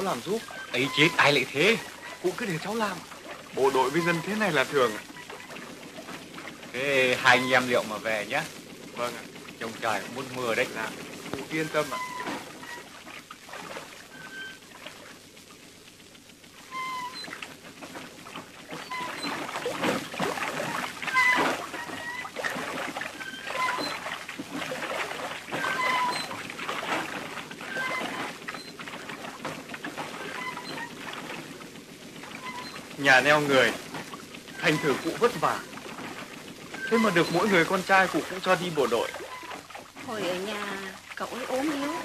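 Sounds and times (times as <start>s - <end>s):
pump mechanism squeaks: 0.0s - 15.3s, 16.5s - 42.0s
water splashing and pouring: 0.0s - 42.0s.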